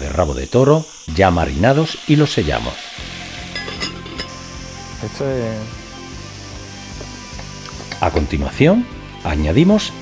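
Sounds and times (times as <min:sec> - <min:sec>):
meat sizzling in oil: 0:00.0 - 0:10.0
background music with held chords: 0:02.8 - 0:10.0.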